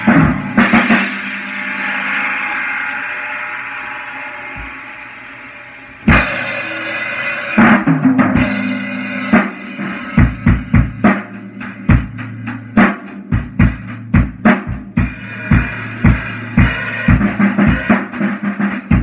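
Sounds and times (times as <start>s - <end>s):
cymbals ringing: 0.0s - 7.6s
loud cymbal crash: 0.0s - 10.8s
drum kit playing: 0.0s - 19.0s.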